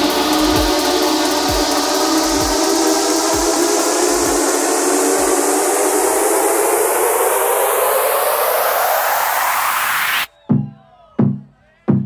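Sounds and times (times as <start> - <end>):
kick drum: 0.0 - 3.6, 10.3 - 12.0
rising noise sweep: 0.0 - 10.3
electronic dance music: 0.0 - 12.0.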